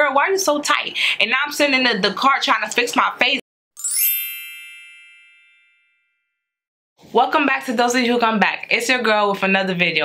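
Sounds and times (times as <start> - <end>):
shimmering bell-like chime: 3.8 - 6.4.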